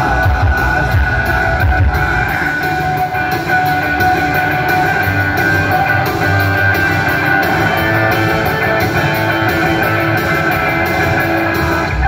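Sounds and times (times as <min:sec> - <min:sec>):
high held tones: 0:00.0 - 0:12.0.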